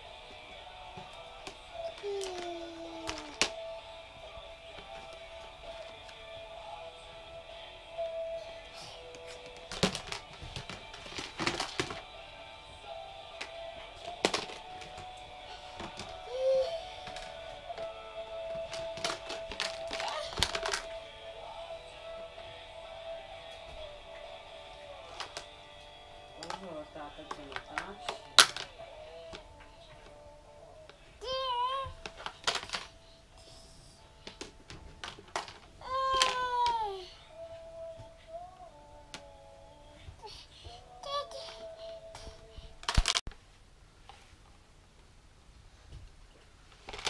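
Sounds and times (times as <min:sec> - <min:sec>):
plastic clothespins clattering: 0:01.4 - 0:03.6, 0:09.1 - 0:12.1, 0:13.4 - 0:21.0, 0:25.1 - 0:25.5, 0:26.4 - 0:30.2, 0:32.0 - 0:32.9, 0:34.2 - 0:36.8, 0:42.8 - 0:43.2
baby vocalizing: 0:01.8 - 0:03.4, 0:16.3 - 0:17.0
plastic clothespins clicking: 0:18.6 - 0:20.9.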